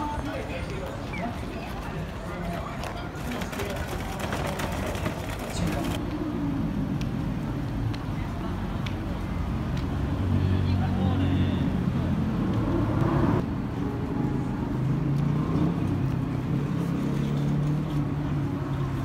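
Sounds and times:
passers-by talking: 0.0s - 6.4s, 7.3s - 12.9s
road traffic hum: 0.0s - 19.0s.

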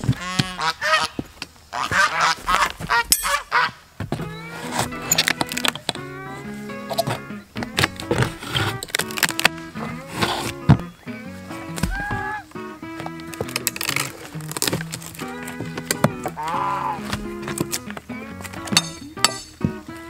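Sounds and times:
geese honking: 0.0s - 18.8s
wooden boards cracking: 4.2s - 6.1s, 6.8s - 10.9s, 11.5s - 19.9s
background music: 4.2s - 20.0s.

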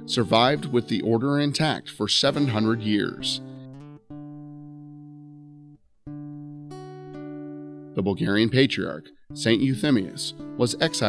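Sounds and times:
plucked guitar chords: 0.0s - 11.0s.

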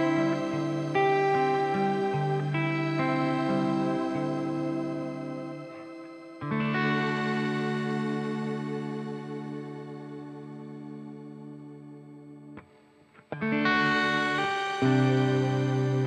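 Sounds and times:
clean electric guitar chords: 0.0s - 16.0s.

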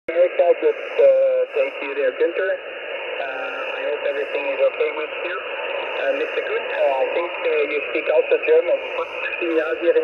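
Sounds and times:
man's voice over shortwave radio: 0.1s - 10.0s
static hiss: 0.1s - 10.0s.

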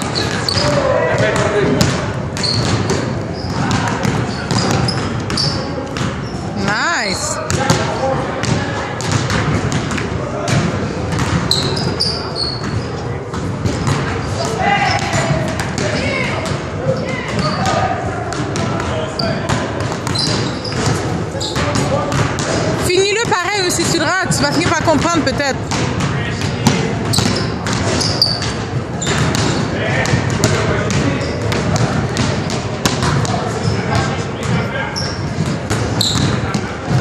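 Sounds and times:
basketballs bouncing on wooden floor: 0.0s - 37.0s
voices in a hall: 0.0s - 37.0s.

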